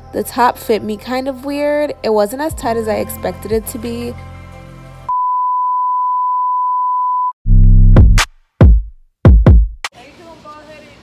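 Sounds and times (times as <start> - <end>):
background music: 0.0 - 5.2
electronic beep tone: 5.1 - 7.4
bass-heavy electronic drum beat: 7.5 - 9.9.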